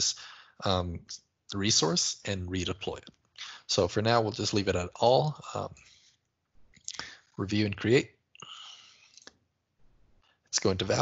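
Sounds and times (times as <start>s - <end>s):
breathy whispered hiss: 8.4s - 9.3s.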